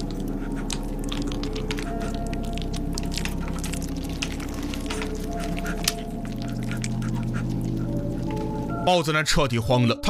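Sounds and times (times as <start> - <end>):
steady low drone: 0.0 - 9.2.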